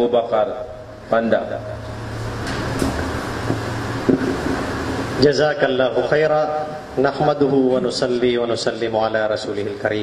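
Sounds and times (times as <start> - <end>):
sound system hum with hiss: 0.0 - 10.0.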